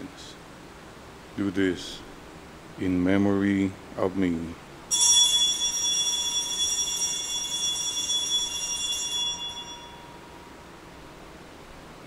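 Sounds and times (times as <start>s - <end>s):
altar bell ringing: 4.9s - 10.8s.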